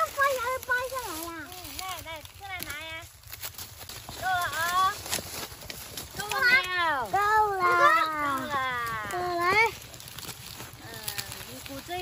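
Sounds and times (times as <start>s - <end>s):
child and woman calling out: 6.2s - 9.8s.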